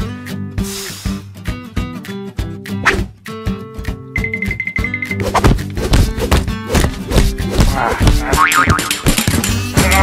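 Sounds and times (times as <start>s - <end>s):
cartoon background music: 0.1s - 10.0s.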